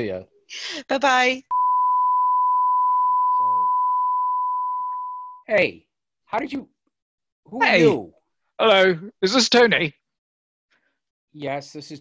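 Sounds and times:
test-tone beep: 1.5 - 5.4.

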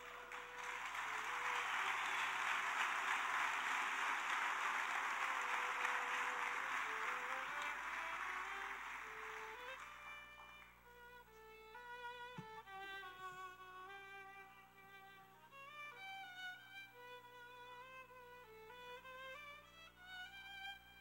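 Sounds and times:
congregation applauding: 0.0 - 10.8
soft music of slow held notes: 7.6 - 21.0.

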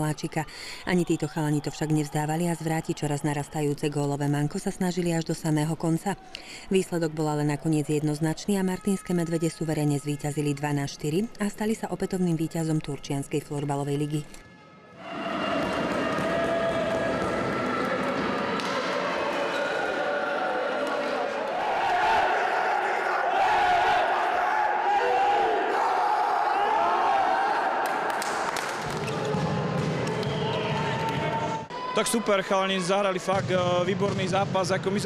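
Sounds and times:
team shouting and cheering: 15.0 - 33.4
sharp claps: 27.8 - 31.2.

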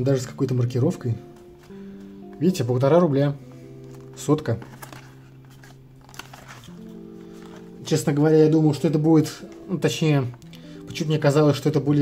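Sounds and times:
soft background music: 0.0 - 12.0
cardboard box rustling: 3.8 - 7.7.

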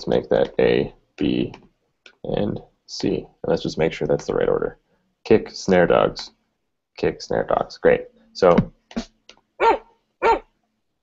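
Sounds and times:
dog barking: 9.6 - 10.5.

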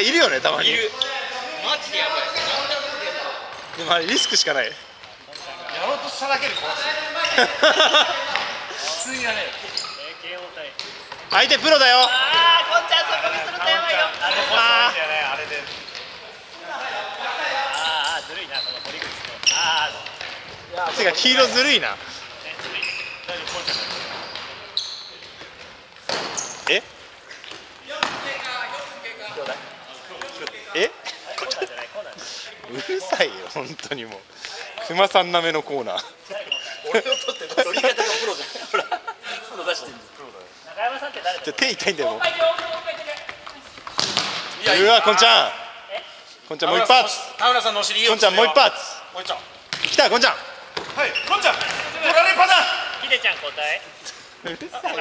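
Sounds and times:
sneakers squeaking: 0.2 - 16.6, 17.4 - 30.6, 36.1 - 37.9, 49.0 - 55.0.

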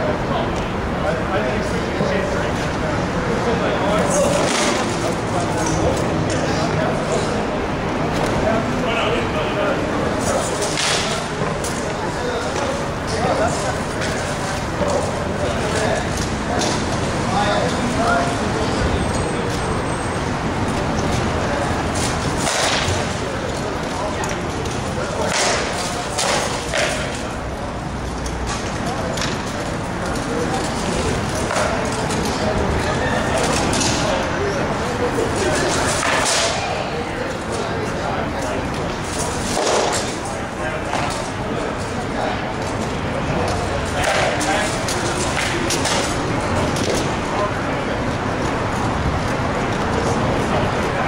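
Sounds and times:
indistinct voices talking: 0.0 - 51.0.

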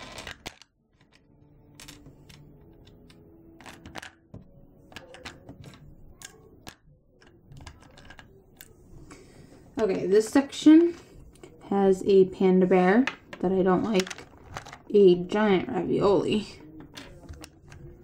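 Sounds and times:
charms clicking against plastic: 0.0 - 8.8.

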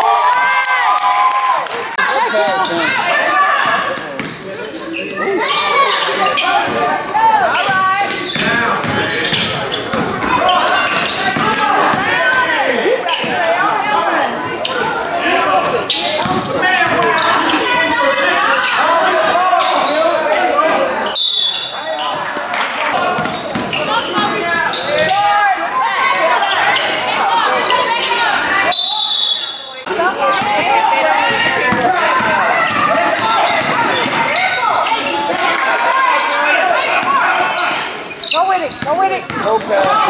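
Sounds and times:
voices shouting in hall: 0.0 - 40.0.

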